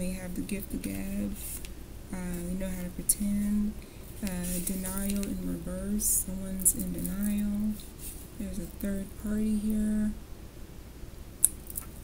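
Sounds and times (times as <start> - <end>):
low hum: 0.0 - 11.6
cards being handled: 4.2 - 5.4.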